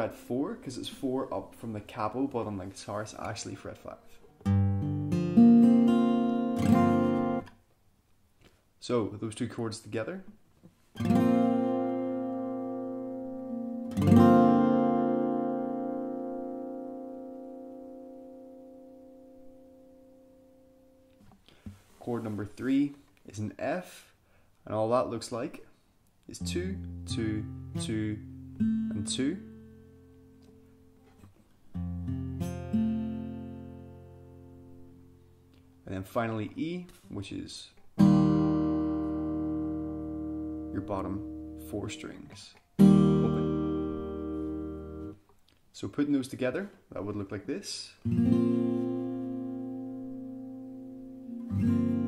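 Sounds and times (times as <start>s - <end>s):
acoustic guitar chords strummed: 4.2s - 7.6s, 11.0s - 21.8s, 26.5s - 35.9s, 38.0s - 45.2s, 48.1s - 52.0s.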